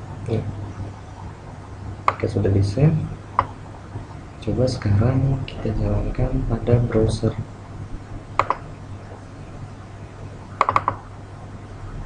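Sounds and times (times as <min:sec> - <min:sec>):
faint low hum: 0:00.0 - 0:12.0
computer mouse clicks: 0:02.0 - 0:02.3, 0:08.4 - 0:08.7, 0:10.6 - 0:11.0.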